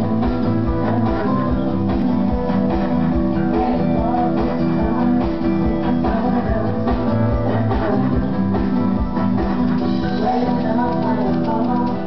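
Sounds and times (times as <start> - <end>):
band song with strummed guitar: 0.0 - 12.0.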